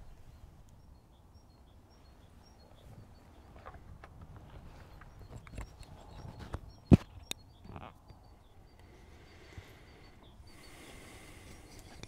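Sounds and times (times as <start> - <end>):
faint high chirps: 0.0 - 3.8, 4.6 - 12.0.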